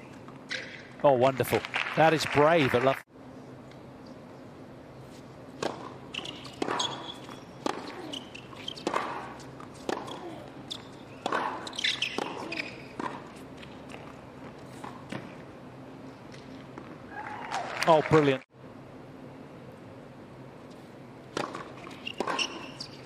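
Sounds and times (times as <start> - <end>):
racket striking tennis ball: 5.5 - 14.0, 21.3 - 23.0
tennis ball bouncing: 5.5 - 15.4, 21.3 - 23.0.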